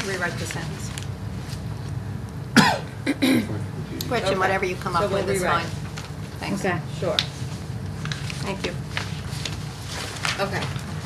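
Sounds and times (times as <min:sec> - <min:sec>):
low room hum: 0:00.0 - 0:11.0
person coughing: 0:02.6 - 0:03.7.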